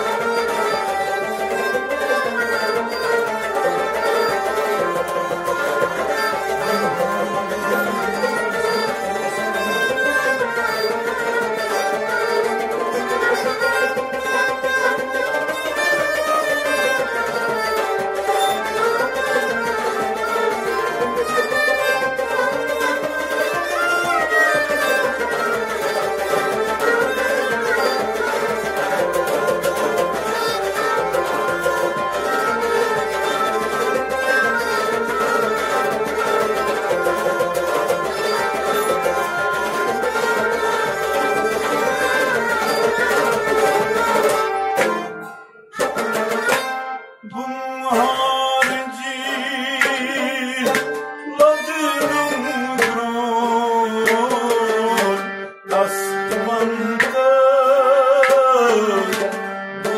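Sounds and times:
pot drum rhythm: 0.0 - 45.1, 45.8 - 46.7
bowed fiddle: 0.0 - 59.9
harmonium: 0.0 - 59.9
plucked long-necked lute: 0.0 - 59.9.

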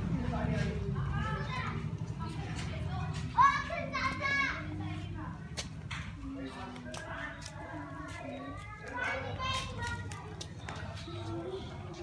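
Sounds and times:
children chattering and calling: 0.0 - 12.0.

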